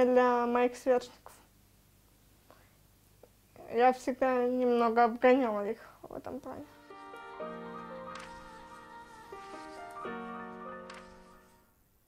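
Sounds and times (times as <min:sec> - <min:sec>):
person speaking: 0:03.6 - 0:06.8.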